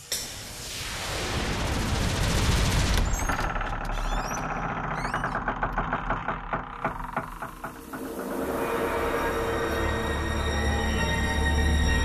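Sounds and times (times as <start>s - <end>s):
fast clattering: 2.6s - 8.6s.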